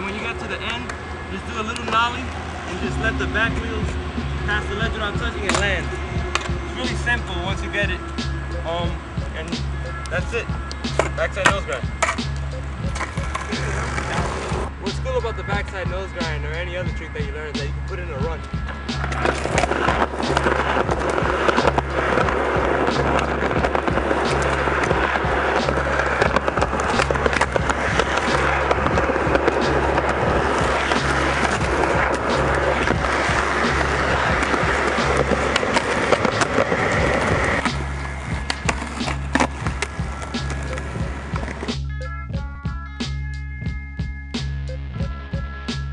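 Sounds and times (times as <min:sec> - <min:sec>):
skateboard wheels on concrete: 0:00.0 - 0:41.8
music with bass line: 0:02.7 - 0:45.9
skateboard clacks: 0:05.5 - 0:05.7, 0:06.3 - 0:06.6, 0:10.7 - 0:14.7, 0:18.7 - 0:41.8.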